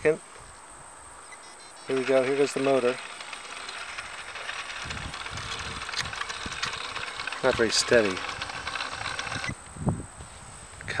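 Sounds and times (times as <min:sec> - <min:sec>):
small motor rattling: 0:01.8 - 0:09.7.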